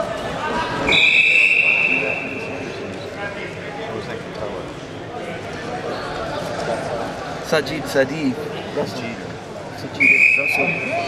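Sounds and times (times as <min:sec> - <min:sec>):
murmur of voices: 0:00.0 - 0:11.0
referee's whistle: 0:00.8 - 0:02.5, 0:10.0 - 0:11.0.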